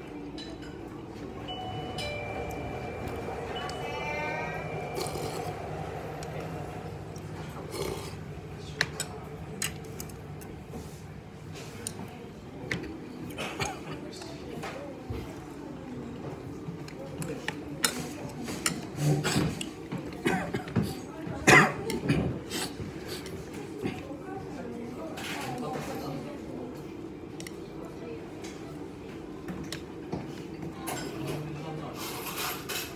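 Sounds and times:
restaurant hum: 0:00.0 - 0:32.9
soup slurping from a spoon: 0:05.0 - 0:05.6.

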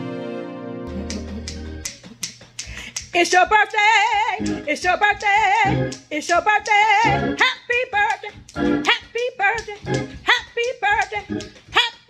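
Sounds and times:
finger snaps keeping a beat: 0:00.9 - 0:12.0
woman singing with vibrato: 0:03.1 - 0:12.0.

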